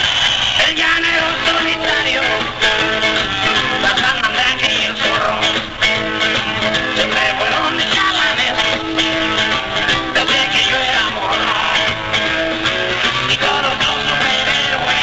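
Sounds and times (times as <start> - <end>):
electric guitar lead: 0.0 - 15.0
live rock band playing: 0.0 - 15.0.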